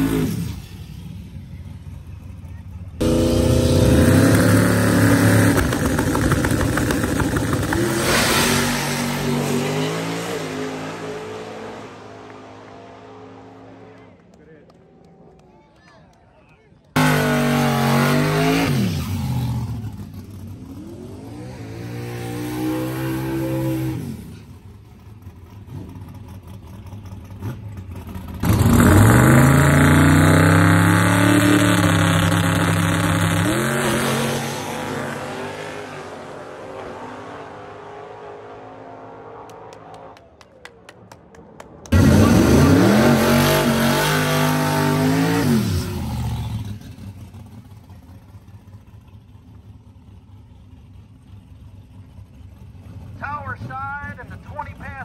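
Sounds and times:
car burnout: 0.0s - 15.4s, 16.9s - 55.0s
drag race car engines at full throttle: 0.0s - 15.5s, 16.7s - 55.0s.

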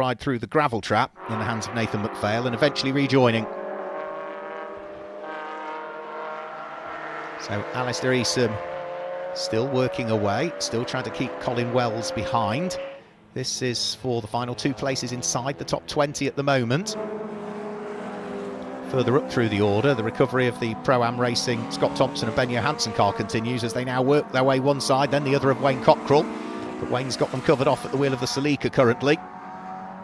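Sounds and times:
race car engines running hard: 1.3s - 30.0s.

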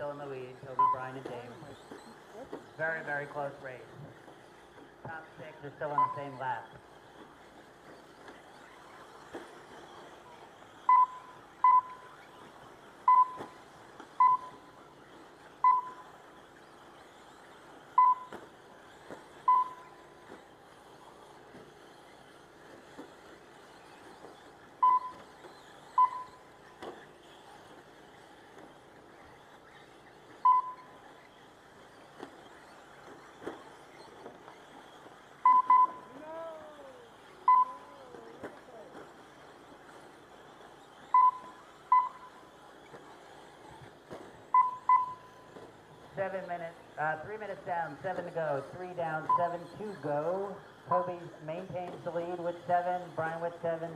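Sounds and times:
track background noise: 0.0s - 53.9s
lap timer short beeps: 0.7s - 2.2s, 5.8s - 6.6s, 10.8s - 12.2s, 13.0s - 13.6s, 14.2s - 14.8s, 15.6s - 16.1s, 17.9s - 18.4s, 19.4s - 20.1s, 24.8s - 25.3s, 25.9s - 26.5s, 30.4s - 31.0s, 35.4s - 36.1s, 37.4s - 37.9s, 41.1s - 42.4s, 44.5s - 45.5s, 49.2s - 49.7s.

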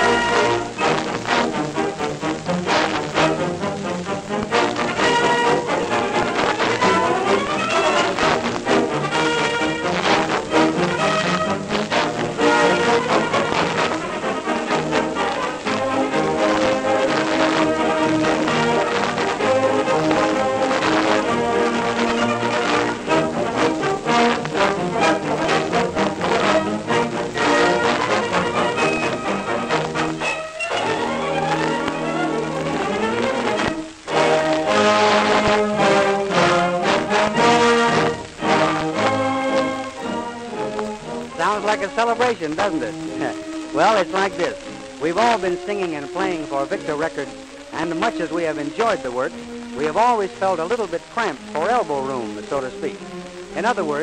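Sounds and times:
brass band music on record: 0.0s - 54.0s.

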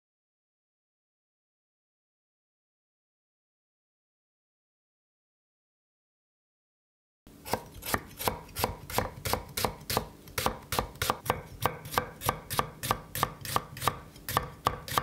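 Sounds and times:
knife slicing onions on board: 7.4s - 15.0s.

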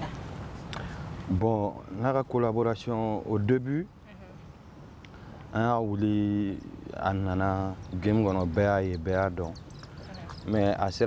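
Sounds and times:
man speaking: 5.5s - 9.6s, 10.4s - 11.0s.

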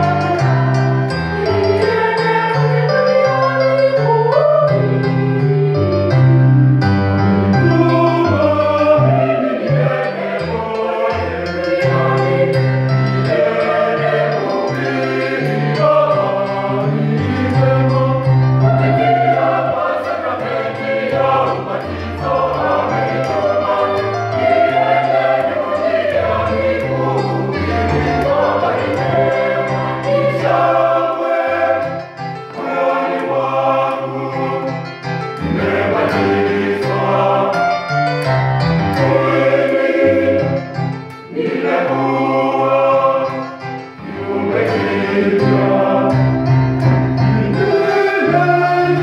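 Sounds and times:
church choir singing: 0.0s - 49.0s.

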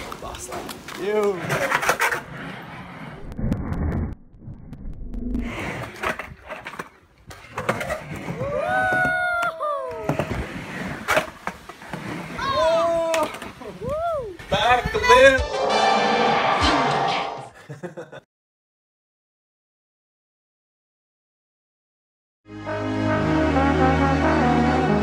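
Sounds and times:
skateboard wheels rolling on concrete: 0.0s - 4.2s, 4.9s - 15.4s
person whooping: 8.4s - 10.1s, 12.4s - 14.4s.

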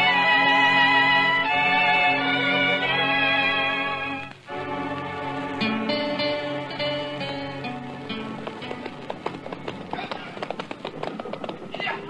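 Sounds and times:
orchestral theme music: 0.0s - 9.2s
hooves clattering: 5.9s - 12.0s.

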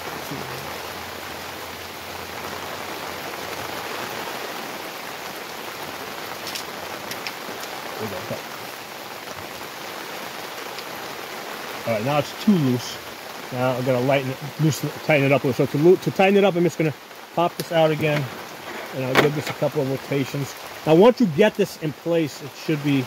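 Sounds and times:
steady rain falling: 0.0s - 23.0s.

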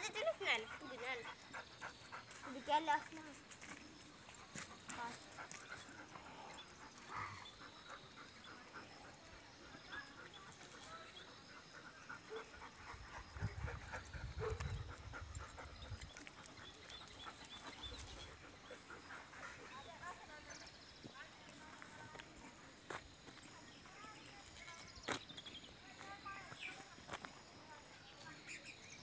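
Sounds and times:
faint dog sounds: 0.0s - 29.0s.

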